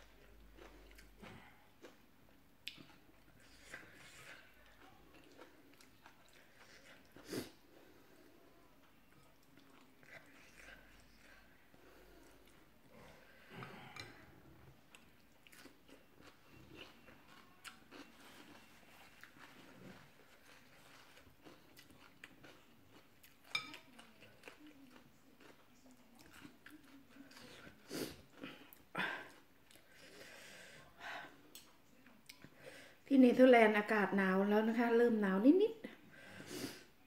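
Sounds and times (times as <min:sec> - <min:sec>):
person chewing food: 0:00.0 - 0:32.6.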